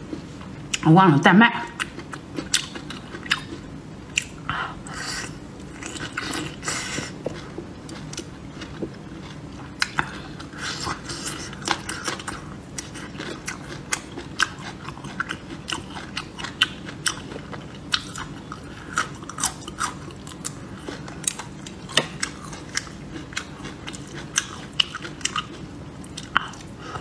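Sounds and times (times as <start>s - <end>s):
person chewing chili pepper crunchily: 1.7s - 27.0s.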